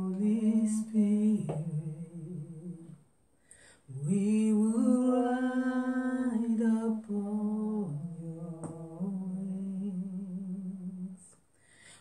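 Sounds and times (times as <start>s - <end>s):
woman humming: 1.5s - 3.0s.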